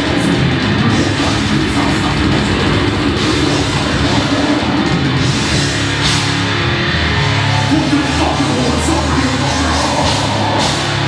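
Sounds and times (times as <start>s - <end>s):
death metal band playing: 0.0s - 11.0s
rapid cymbal hits: 0.9s - 7.5s.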